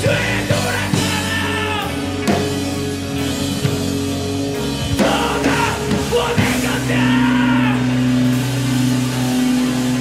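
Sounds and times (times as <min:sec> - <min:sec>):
person singing: 0:00.0 - 0:02.1, 0:04.9 - 0:08.0
rock band guitar and bass chord: 0:00.0 - 0:10.0.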